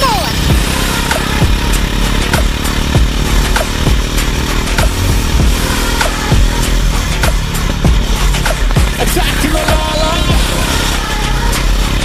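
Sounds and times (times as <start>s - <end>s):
electronic dance music: 0.0s - 12.0s
booming kick drums: 0.4s - 0.8s, 2.4s - 4.0s, 4.8s - 5.6s, 6.3s - 6.6s, 7.2s - 9.0s.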